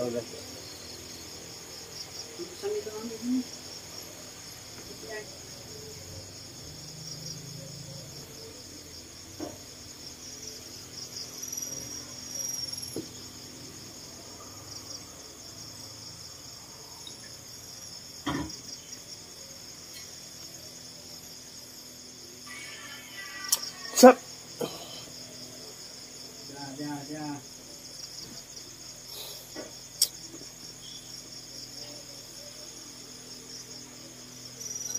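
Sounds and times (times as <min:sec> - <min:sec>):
crickets chirring: 0:00.0 - 0:34.9.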